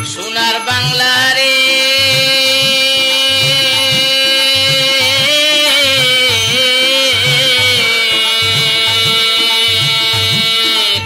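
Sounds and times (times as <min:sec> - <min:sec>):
low hand-drum rhythm: 0:00.0 - 0:11.0
sustained folk melody: 0:00.0 - 0:11.0.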